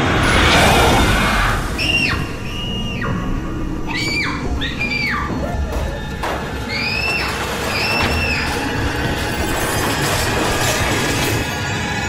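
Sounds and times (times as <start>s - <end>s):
eerie high tone sliding down: 0.0s - 9.2s.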